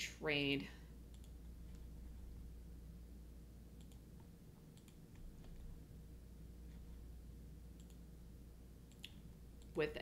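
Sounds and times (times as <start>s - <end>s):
low steady hum: 0.0s - 10.0s
computer mouse clicks: 1.1s - 1.9s, 3.8s - 5.7s, 7.8s - 8.0s, 8.9s - 9.8s.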